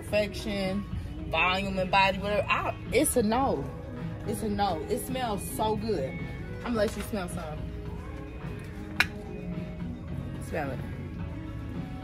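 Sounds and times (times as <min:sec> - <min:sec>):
background music: 0:00.0 - 0:12.0
bottle cap snapping open: 0:09.0 - 0:09.2.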